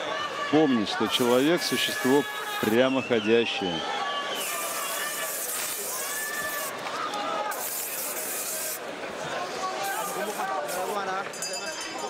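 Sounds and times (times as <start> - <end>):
arena background noise: 0.0 - 12.0
high hiss: 4.4 - 6.7.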